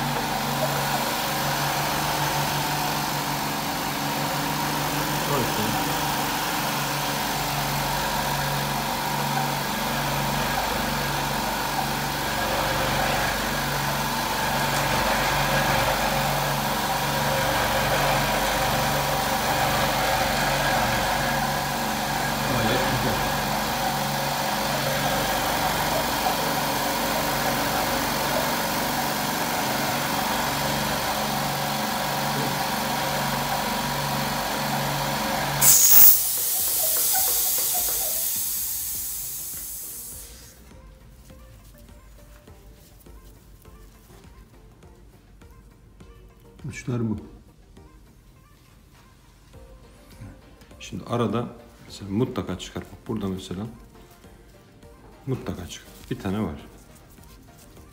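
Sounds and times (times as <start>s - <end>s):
machine humming with low pulsing: 0.0s - 43.8s.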